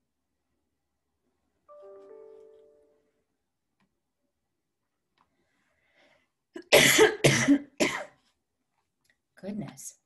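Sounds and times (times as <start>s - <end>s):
woman coughing: 6.6s - 8.2s.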